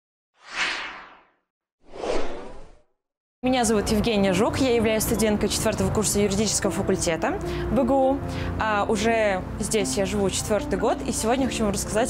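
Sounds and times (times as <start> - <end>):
whoosh sound effects: 0.4 - 2.8.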